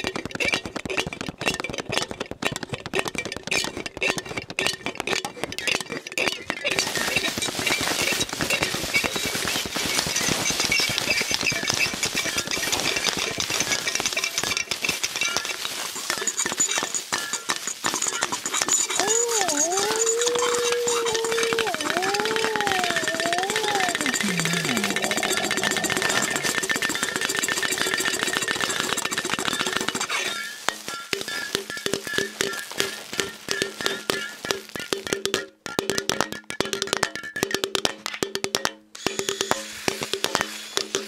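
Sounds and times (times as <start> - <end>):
rapid clinking and tapping: 0.0 - 24.0, 25.1 - 41.0.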